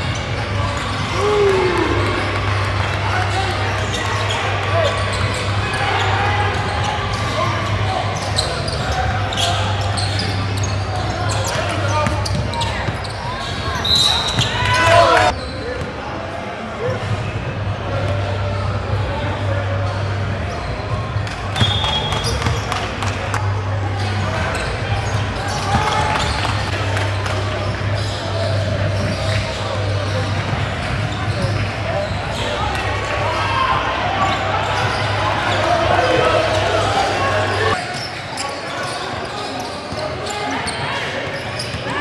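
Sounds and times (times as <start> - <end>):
echoing voices: 0.0 - 42.0.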